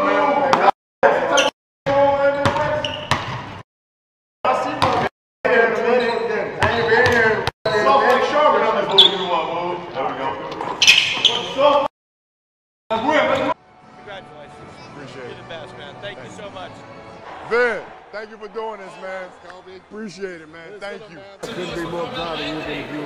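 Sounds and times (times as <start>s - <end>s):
basketballs bouncing on court: 2.4s - 3.6s, 4.8s - 5.1s
men's voices: 14.2s - 23.0s.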